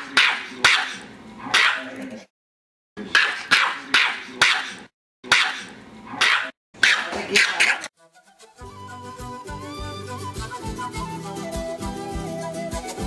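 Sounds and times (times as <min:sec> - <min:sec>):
small dog yapping: 0:00.0 - 0:01.9, 0:03.1 - 0:07.9.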